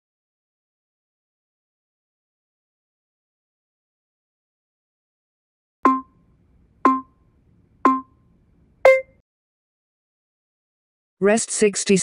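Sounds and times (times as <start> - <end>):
electronic countdown beeps: 5.8 - 6.2, 6.8 - 7.2, 7.9 - 8.2, 8.8 - 9.2.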